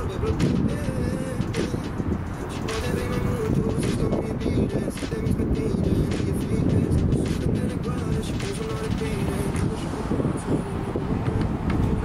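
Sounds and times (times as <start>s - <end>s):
song with singing and beat: 0.0s - 12.0s
steady low rumble: 0.0s - 12.0s.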